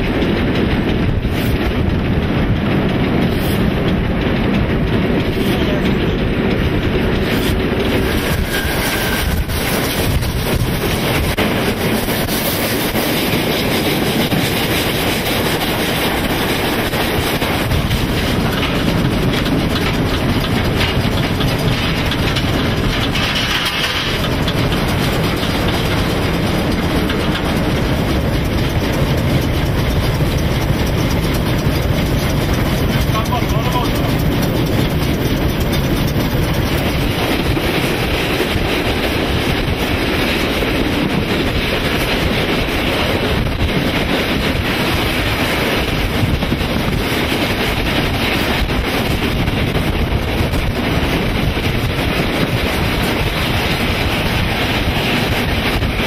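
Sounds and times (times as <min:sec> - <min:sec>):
steam locomotive wheels rumbling: 0:00.0 - 0:56.0.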